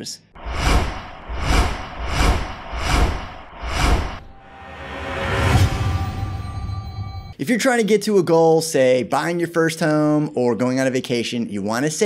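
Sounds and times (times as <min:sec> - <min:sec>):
rhythmic whoosh sound effects: 0:00.4 - 0:07.0.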